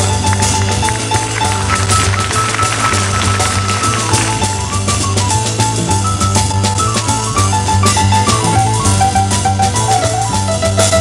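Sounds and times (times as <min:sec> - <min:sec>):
cymbals and drums: 0:00.0 - 0:11.0
live jazz band: 0:00.0 - 0:11.0
walking double bass: 0:00.0 - 0:11.0.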